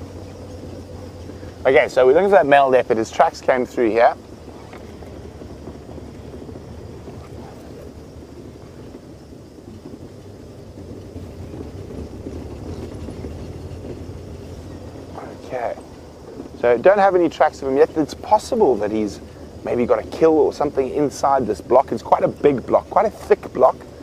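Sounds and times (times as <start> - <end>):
vehicle engine and tyre rumble: 0.0 - 24.0.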